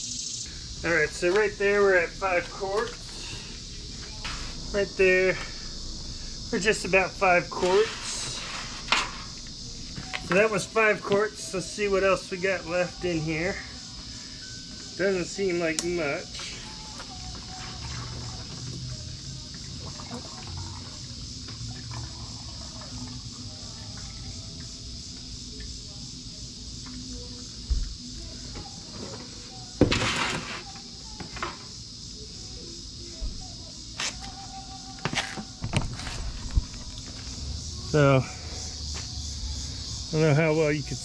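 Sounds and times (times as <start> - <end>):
oil trickling into a jug: 17.2 - 24.3.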